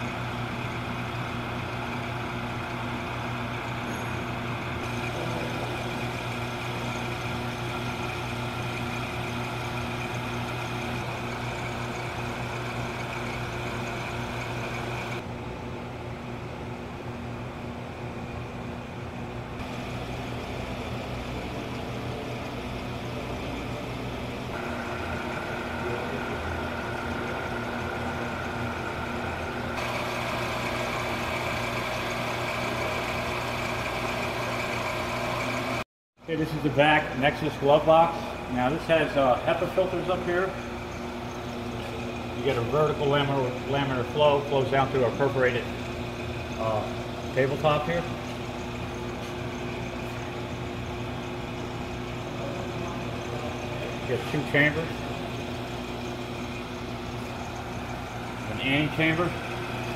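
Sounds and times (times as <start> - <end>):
equipment mechanical hum: 0.0 - 59.9.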